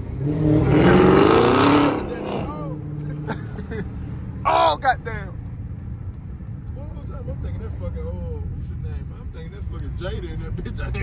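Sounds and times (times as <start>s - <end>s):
car engine accelerating hard: 0.0s - 3.4s.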